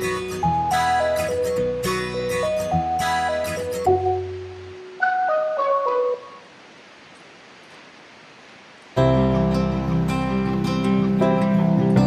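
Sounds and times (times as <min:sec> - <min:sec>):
distant waterfall rushing: 0:00.0 - 0:12.0.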